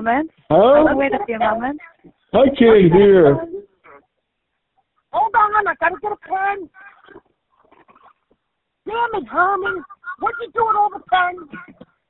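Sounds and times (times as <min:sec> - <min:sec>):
man's voice on telephone: 0:02.3 - 0:03.5
voices over telephone line: 0:04.8 - 0:12.0.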